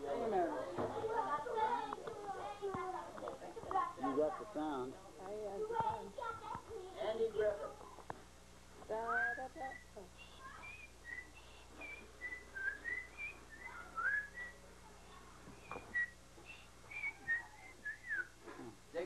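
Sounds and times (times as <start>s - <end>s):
person whistling a tune: 10.6s - 14.6s, 15.6s - 18.4s.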